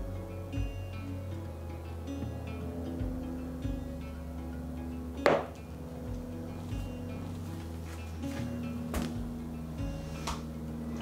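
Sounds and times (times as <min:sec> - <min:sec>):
background music: 0:00.0 - 0:11.0
glass marble knocking on table: 0:05.3 - 0:05.5.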